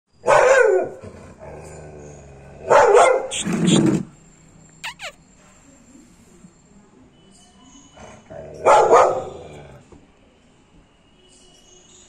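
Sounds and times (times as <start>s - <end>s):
dog barking: 0.2s - 0.9s, 2.6s - 3.8s, 8.6s - 9.4s.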